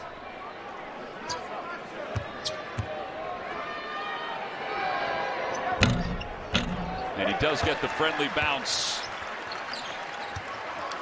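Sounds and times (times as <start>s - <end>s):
arena crowd noise: 0.0s - 11.0s
ball clanging off rim: 5.8s - 7.2s
basketball bouncing on hardwood: 5.8s - 7.7s.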